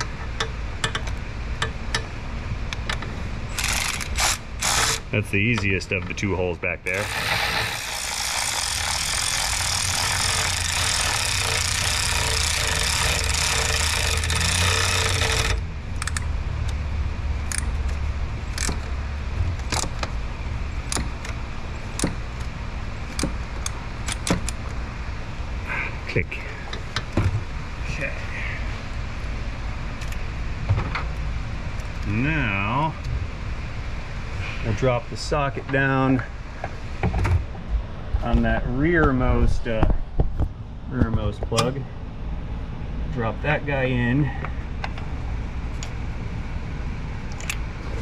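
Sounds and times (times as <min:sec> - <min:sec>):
power ratchet whirring: 0:03.5 - 0:05.1, 0:06.9 - 0:16.3
tools clicking and clinking: 0:08.3 - 0:16.8, 0:17.4 - 0:18.9, 0:23.1 - 0:24.7, 0:47.3 - 0:47.6.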